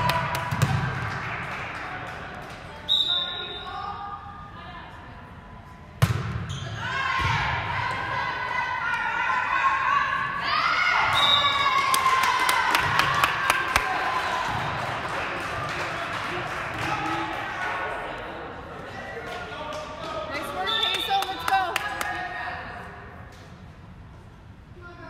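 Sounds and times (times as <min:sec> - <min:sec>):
players shouting in gymnasium: 0:06.4 - 0:14.8.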